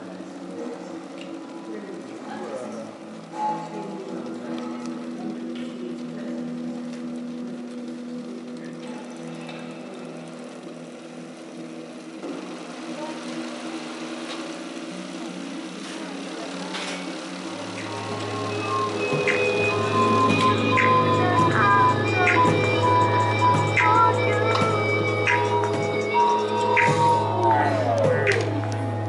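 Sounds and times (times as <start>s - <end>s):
electronic drone: 0.0s - 29.0s
deep hum: 17.4s - 29.0s.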